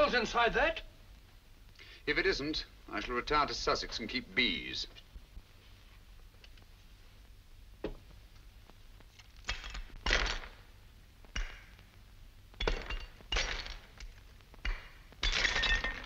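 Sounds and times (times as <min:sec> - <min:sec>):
bust smashing with metal tool: 0:09.4 - 0:10.6, 0:12.6 - 0:16.0
shards clinking: 0:12.6 - 0:14.1, 0:14.7 - 0:16.0.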